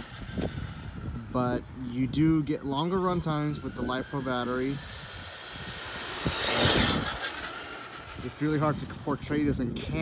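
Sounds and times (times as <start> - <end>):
electric motor whining: 0.0 - 10.0.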